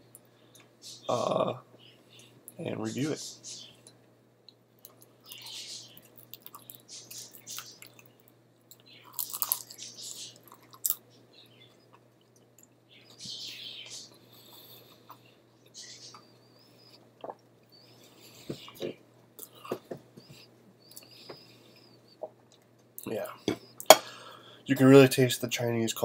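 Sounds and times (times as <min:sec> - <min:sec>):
person chewing food: 0:03.9 - 0:12.8.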